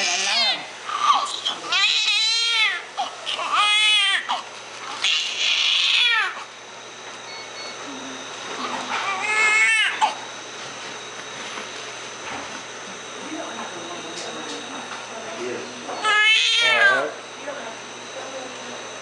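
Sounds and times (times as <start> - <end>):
newborn baby crying: 0.0 - 4.4, 5.0 - 6.5, 8.9 - 10.2, 16.0 - 17.0.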